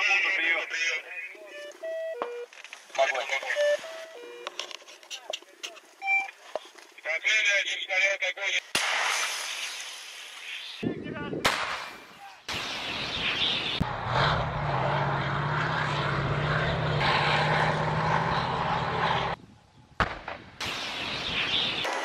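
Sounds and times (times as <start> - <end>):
artillery blasts: 11.4 - 14.0, 20.0 - 22.0
armoured vehicle engine hum: 13.0 - 19.4.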